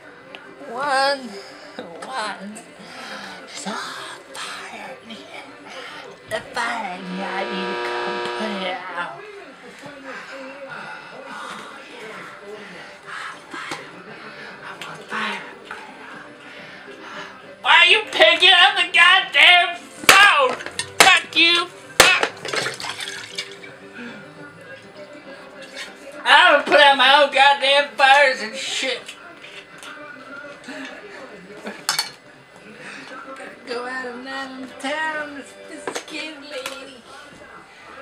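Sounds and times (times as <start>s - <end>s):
buzzing and hum: 6.3s - 9.0s
voice wobbling in pitch: 6.8s - 8.8s.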